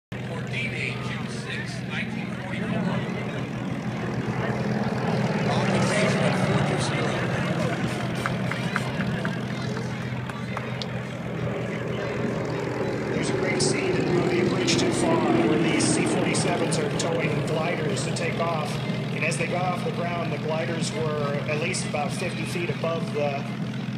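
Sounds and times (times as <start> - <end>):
propeller plane engines droning: 0.1 - 23.9.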